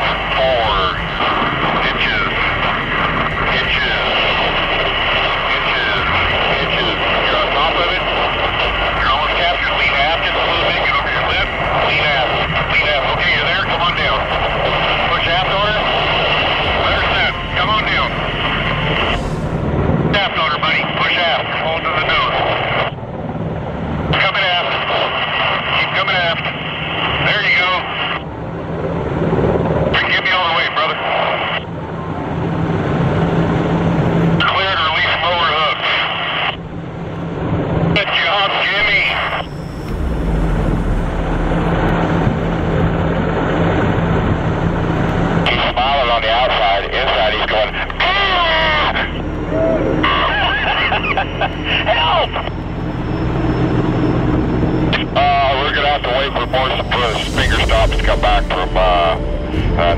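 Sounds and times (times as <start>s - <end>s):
helicopter turbines and rotor droning: 0.0s - 59.9s
indistinct radio chatter: 20.1s - 23.0s, 34.4s - 36.6s, 38.0s - 39.5s, 45.5s - 49.2s, 49.9s - 52.6s, 54.9s - 58.7s.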